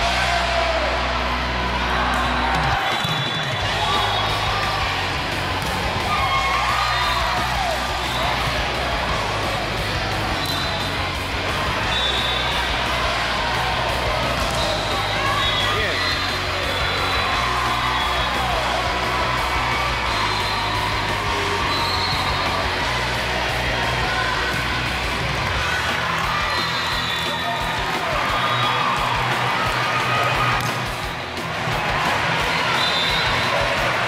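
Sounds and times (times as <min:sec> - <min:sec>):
crowd voices and cheering: 0:00.0 - 0:34.0
music playing: 0:00.0 - 0:34.0.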